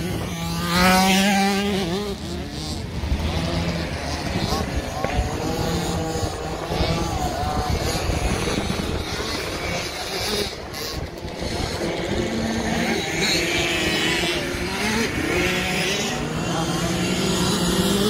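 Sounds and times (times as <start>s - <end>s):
motocross bike engines revving: 0.0s - 18.0s.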